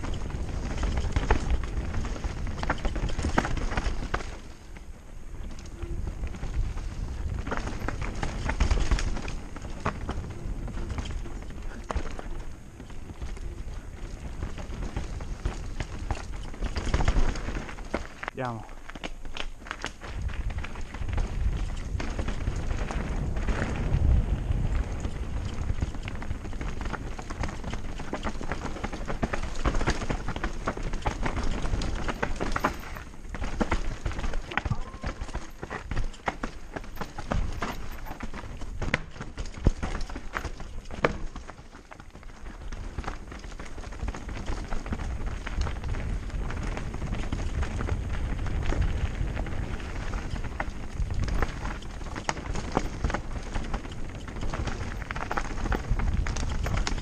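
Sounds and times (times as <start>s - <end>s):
bike rattling: 0.0s - 57.0s
mountain bike low rumble: 0.0s - 57.0s
tyres crunching over stones: 0.0s - 57.0s.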